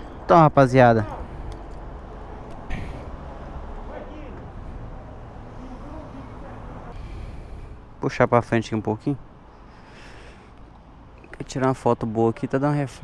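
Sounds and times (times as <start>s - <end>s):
faint distant voices: 2.2s - 8.6s.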